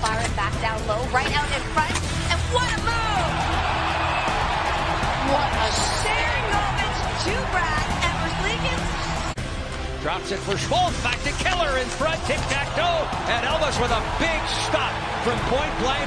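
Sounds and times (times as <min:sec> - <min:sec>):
arena music: 0:00.0 - 0:16.0
crowd cheering: 0:02.5 - 0:09.4, 0:12.0 - 0:16.0.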